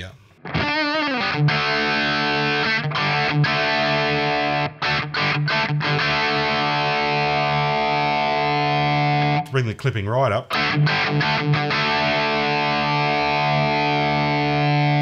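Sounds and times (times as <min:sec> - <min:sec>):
distorted electric guitar chords: 0:00.0 - 0:09.5, 0:10.5 - 0:15.0.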